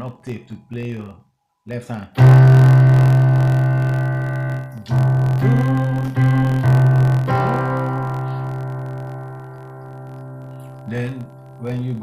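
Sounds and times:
keyboard playing chords: 2.2s - 12.0s.

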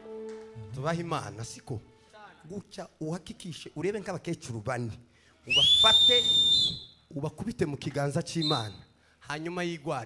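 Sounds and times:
shrill whistling tone: 5.5s - 7.0s, 8.4s - 8.9s.

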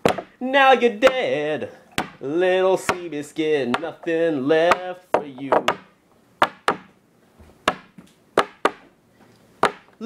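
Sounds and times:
sharp knocks on a hard surface: 0.0s - 0.3s, 2.0s - 2.2s, 4.7s - 6.9s, 7.6s - 8.9s, 9.6s - 9.9s.

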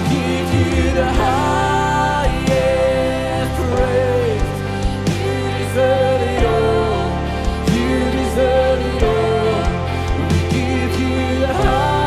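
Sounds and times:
bass guitar: 0.0s - 12.0s
drum kit: 0.0s - 12.0s
electric guitars: 0.0s - 12.0s
person singing: 0.0s - 12.0s.

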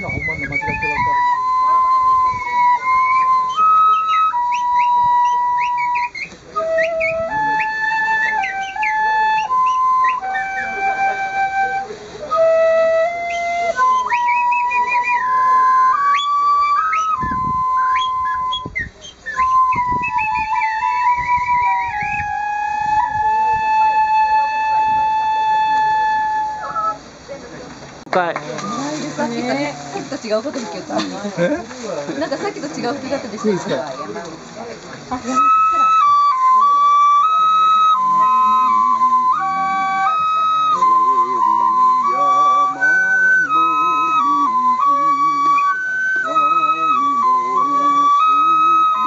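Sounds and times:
bamboo flute solo melody: 0.0s - 27.3s, 28.4s - 30.8s, 33.9s - 49.0s.

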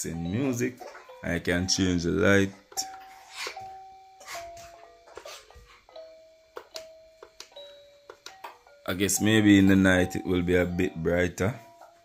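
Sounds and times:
electronic lullaby melody: 0.0s - 12.0s.

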